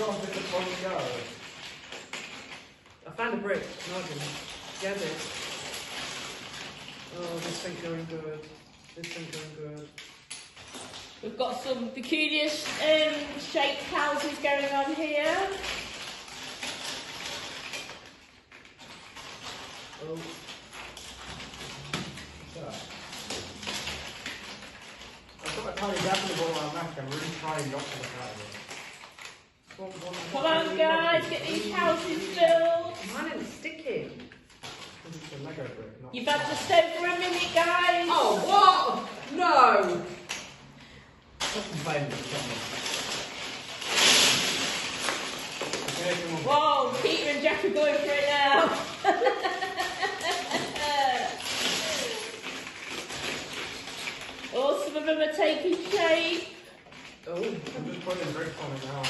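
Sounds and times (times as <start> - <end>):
plastic bricks clattering: 0.0 - 59.0.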